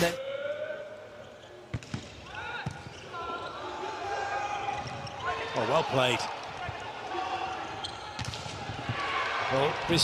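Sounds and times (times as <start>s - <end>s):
crowd noise in indoor arena: 0.0s - 10.0s.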